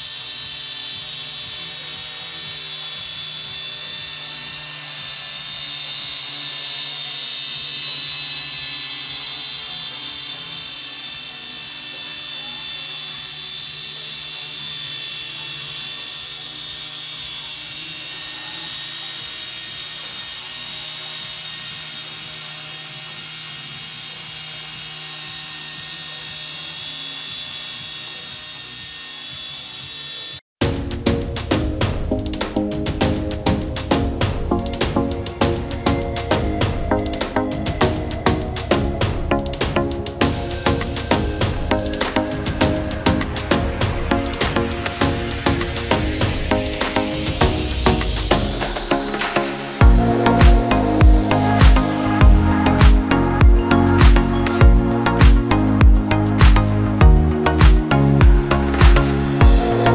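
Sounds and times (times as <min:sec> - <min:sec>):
quadcopter propellers whining: 0:00.0 - 0:59.9.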